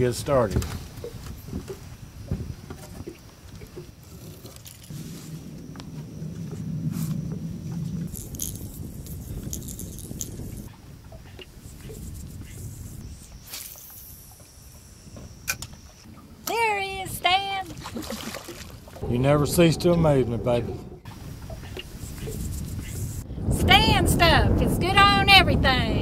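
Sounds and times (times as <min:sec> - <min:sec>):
low hum: 0:01.3 - 0:24.8
granules rattling in shaker: 0:08.2 - 0:10.4.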